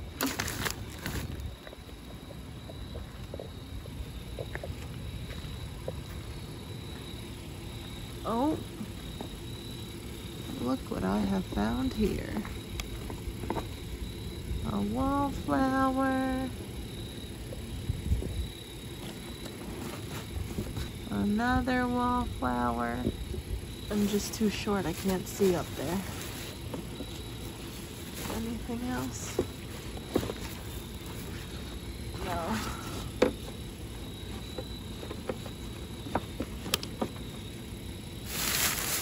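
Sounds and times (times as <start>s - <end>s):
plastic bags rustling: 0.0s - 1.5s, 24.0s - 31.6s, 38.2s - 39.0s.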